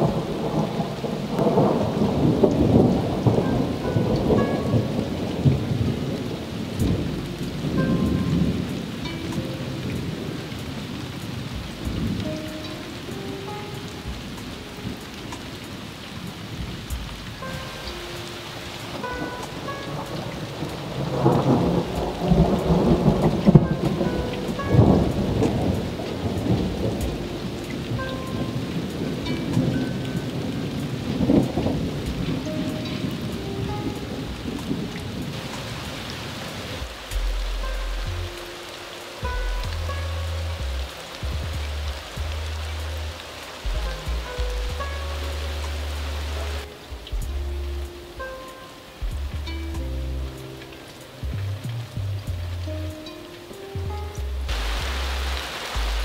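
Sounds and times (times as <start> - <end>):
thunder rolling: 0.0 - 13.1, 13.8 - 48.3
heavy rain: 0.0 - 56.0.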